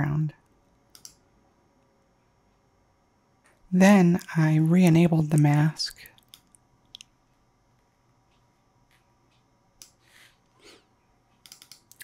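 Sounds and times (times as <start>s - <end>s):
computer mouse clicks: 0.9s - 1.2s, 5.4s - 7.1s, 9.3s - 10.1s, 11.3s - 12.0s.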